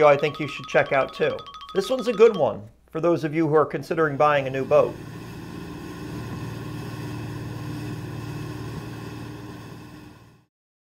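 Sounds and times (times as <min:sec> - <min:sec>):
motorboat engine drone: 0:04.6 - 0:10.5.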